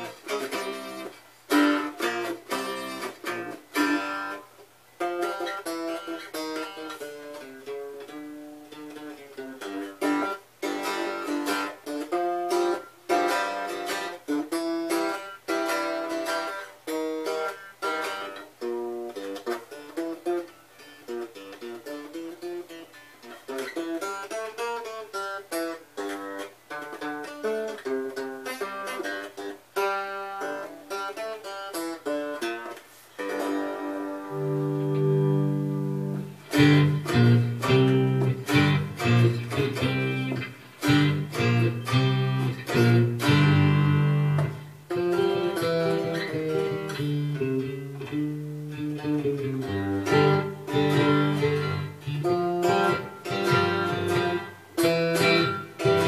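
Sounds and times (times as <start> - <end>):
guitar picked notes and chords: 0.0 - 56.0.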